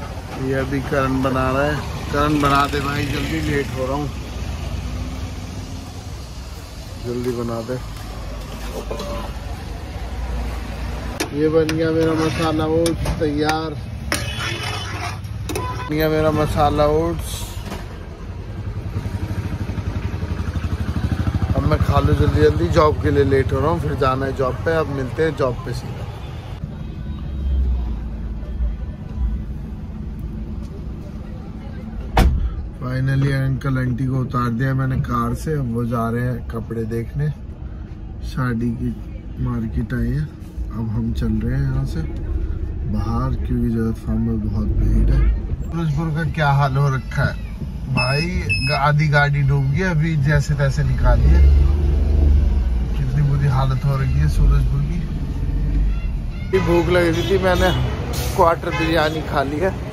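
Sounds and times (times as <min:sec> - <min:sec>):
low rumble of street traffic: 0:00.0 - 0:59.9.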